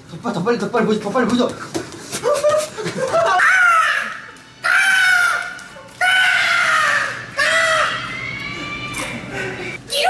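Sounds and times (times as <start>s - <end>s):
man shrieking with laughter: 3.2s - 5.2s.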